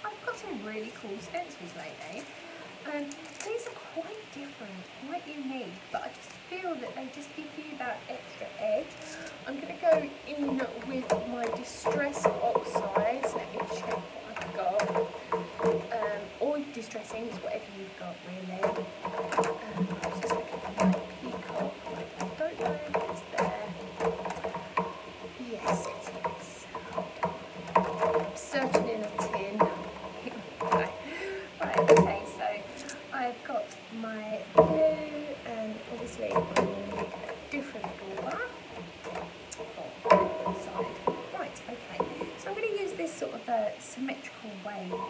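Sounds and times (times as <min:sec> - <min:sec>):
indistinct voices talking: 0:00.0 - 0:38.8
light clicks and taps: 0:07.8 - 0:33.2, 0:34.1 - 0:43.4.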